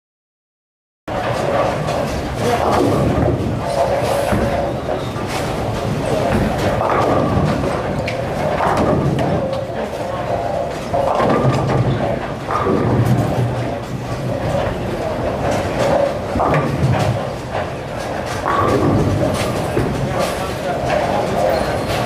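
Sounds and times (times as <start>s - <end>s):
bowling balls rolling: 1.1s - 22.0s
bowling pins clattering: 1.1s - 22.0s
background chatter: 1.2s - 22.0s.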